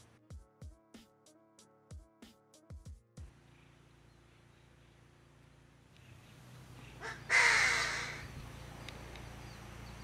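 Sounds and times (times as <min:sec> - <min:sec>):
bird calling harshly: 0:06.0 - 0:08.4.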